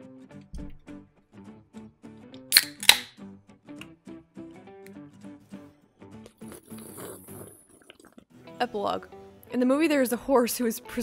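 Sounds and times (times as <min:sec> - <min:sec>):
quiet plucked background music: 0:00.0 - 0:06.7, 0:08.3 - 0:11.0
can ring-pull snapping open: 0:02.3 - 0:03.2.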